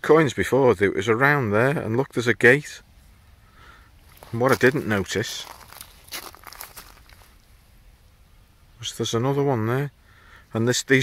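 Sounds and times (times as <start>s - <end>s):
footsteps crunching on frosty ground: 4.0s - 7.5s.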